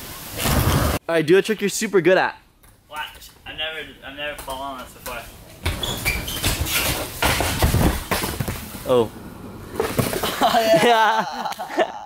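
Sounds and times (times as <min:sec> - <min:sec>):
body hitting a ramp: 0:05.6 - 0:08.6.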